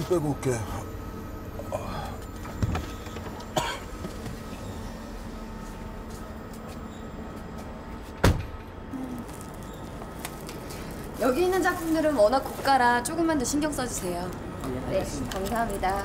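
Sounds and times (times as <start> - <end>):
car door shutting thump: 8.2 - 8.6.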